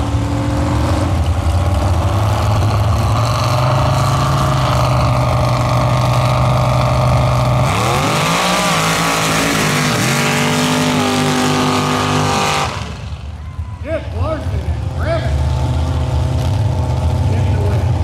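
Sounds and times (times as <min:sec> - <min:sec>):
truck engine revving and shifting: 0:00.0 - 0:13.4, 0:14.3 - 0:18.0.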